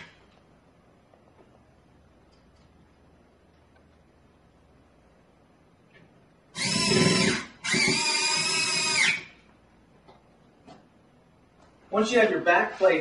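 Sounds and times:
cordless drill driving screws: 0:06.6 - 0:09.3.

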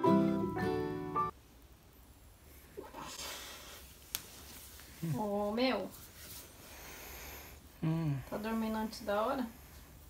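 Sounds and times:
soft hiss of breath: 0:02.3 - 0:10.0
person's wordless vocal sound: 0:07.8 - 0:08.4.

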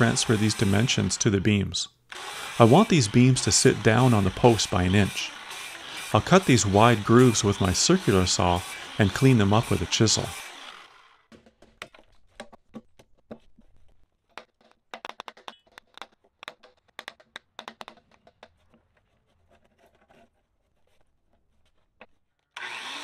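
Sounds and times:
circular saw starting up: 0:00.0 - 0:11.2, 0:22.6 - 0:23.0
chisel tapping and knocking wood: 0:15.0 - 0:18.5.

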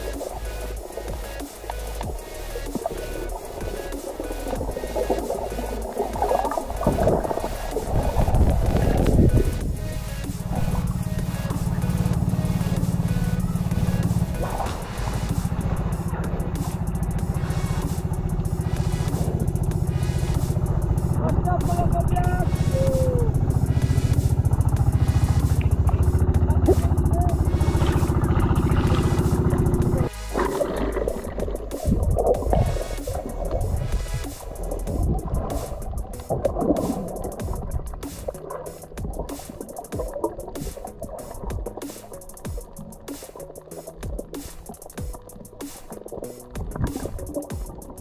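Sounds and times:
boat engine running: 0:00.0 - 0:48.0.

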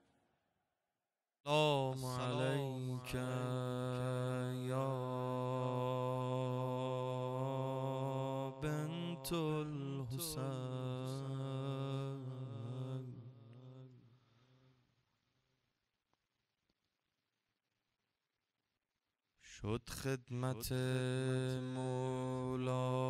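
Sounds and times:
man chanting solo: 0:01.5 - 0:13.2.

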